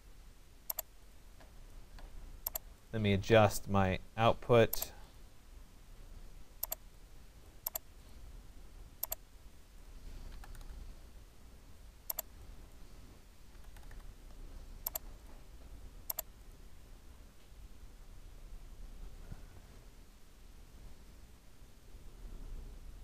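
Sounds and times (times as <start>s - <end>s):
faint room hum: 0.0s - 23.0s
mouse and keyboard clicks: 0.7s - 0.9s, 2.0s - 2.7s, 6.6s - 6.8s, 7.6s - 7.9s, 9.0s - 9.2s, 12.1s - 12.3s, 13.5s - 15.1s, 16.1s - 16.3s.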